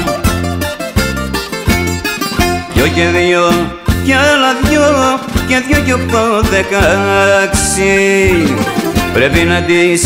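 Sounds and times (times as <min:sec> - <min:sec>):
bouzouki plucked melody: 0:00.0 - 0:10.0
low accompaniment: 0:00.0 - 0:10.0.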